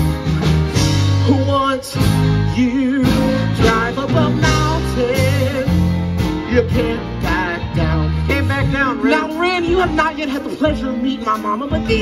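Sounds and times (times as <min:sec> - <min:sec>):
live country band music: 0:00.0 - 0:12.0.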